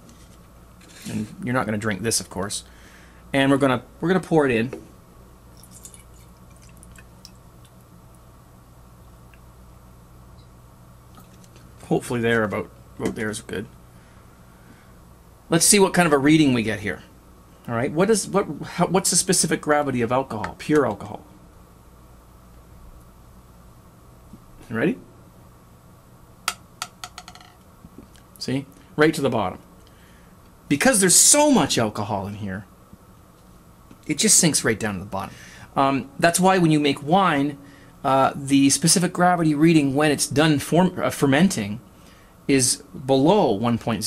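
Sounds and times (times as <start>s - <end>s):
liquid drips and splashes: 5.5s - 7.8s.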